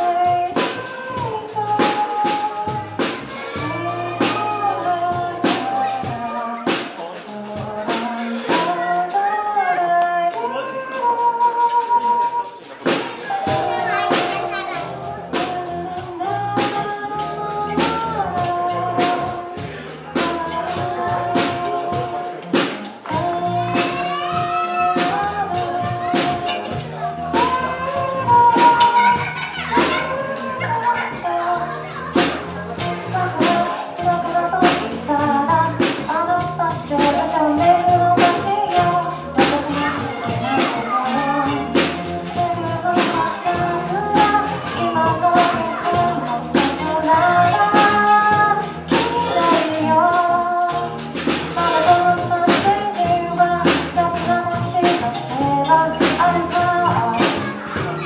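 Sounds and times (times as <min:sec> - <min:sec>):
drums beating: 0:00.0 - 0:09.2, 0:11.2 - 0:58.0
woman singing lead vocal: 0:00.0 - 0:12.7, 0:15.0 - 0:58.0
bass: 0:00.0 - 0:58.0
guitar: 0:00.0 - 0:58.0
live pop band playing: 0:00.0 - 0:58.0
electric piano: 0:11.5 - 0:58.0.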